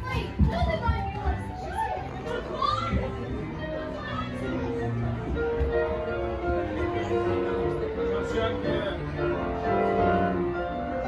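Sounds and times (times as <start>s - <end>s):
background music: 0.0s - 11.0s
people and children chattering: 0.0s - 11.0s.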